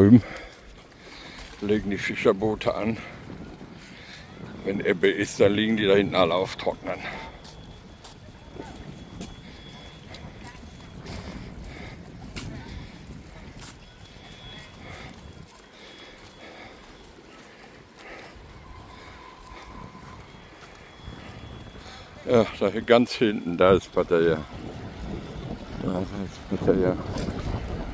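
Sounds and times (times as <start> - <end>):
footsteps on paved path: 0.0 - 27.9
wind rumbling on microphone: 0.0 - 27.9.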